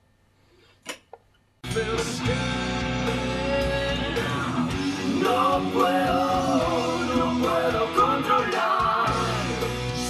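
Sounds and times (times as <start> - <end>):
rock music over speakers: 1.6 - 10.0.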